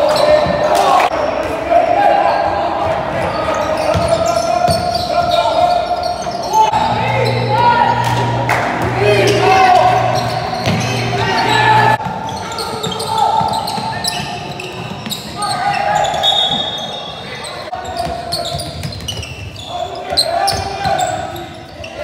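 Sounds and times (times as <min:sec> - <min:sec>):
sneakers squeaking on court: 0:00.0 - 0:01.5, 0:02.3 - 0:22.0
voices echoing in hall: 0:00.0 - 0:22.0.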